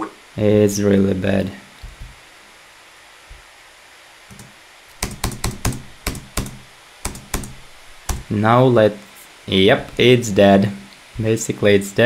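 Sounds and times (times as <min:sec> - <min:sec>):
laptop keys tapping: 0:04.3 - 0:08.3.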